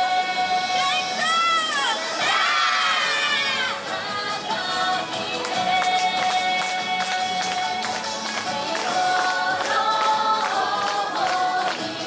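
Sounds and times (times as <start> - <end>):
crowd shouting in unison: 1.6 - 3.9.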